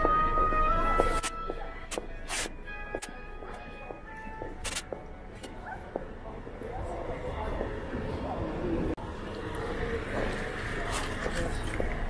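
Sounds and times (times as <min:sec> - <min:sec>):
music from shops: 0:00.0 - 0:07.9
crowd noise: 0:00.0 - 0:12.0.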